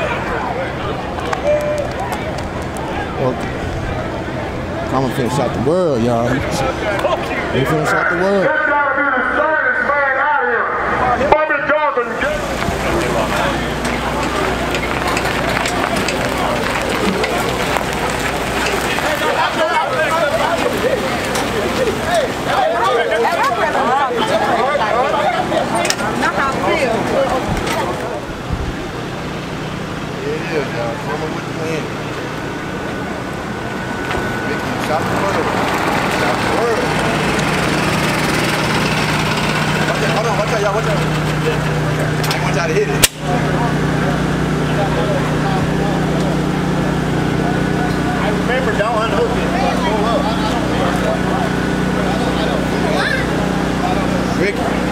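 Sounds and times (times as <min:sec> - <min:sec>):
low engine hum: 0:00.0 - 0:54.9
people talking over one another: 0:00.0 - 0:54.9.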